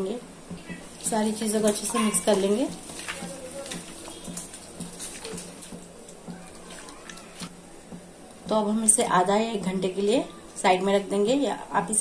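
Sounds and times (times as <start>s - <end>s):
faint background music: 0.0s - 12.0s
hand mixing chicken in steel bowl: 0.7s - 7.5s.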